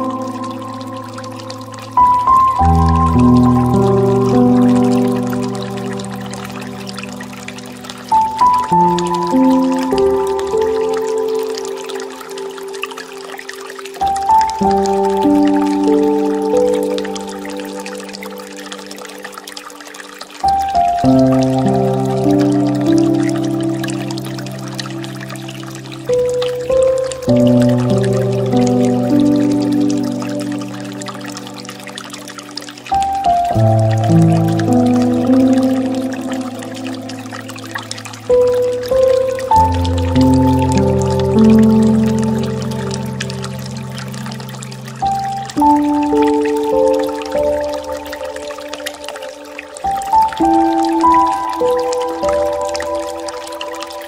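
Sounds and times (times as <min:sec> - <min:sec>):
soft solo piano: 0:00.0 - 0:12.9
slow piano chords: 0:00.0 - 0:54.0
water trickling from fountain: 0:00.0 - 0:54.0.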